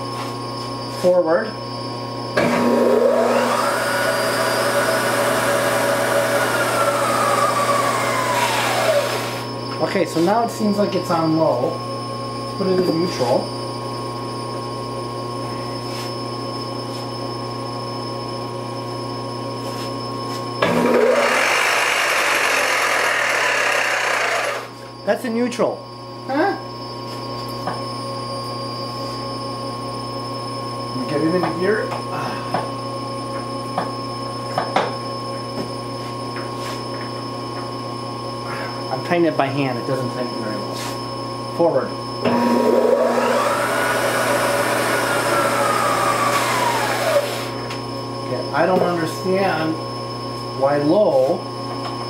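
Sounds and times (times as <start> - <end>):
milling machine motor whine: 0.0 - 52.0.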